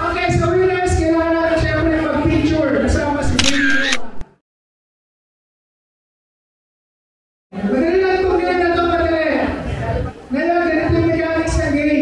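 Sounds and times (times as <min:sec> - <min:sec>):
camera shutter click: 0:03.2 - 0:04.3.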